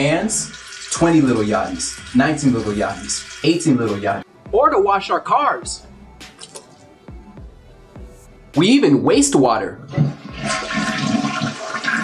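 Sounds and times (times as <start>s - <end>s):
toilet flushing: 0.0s - 4.2s, 9.8s - 12.0s.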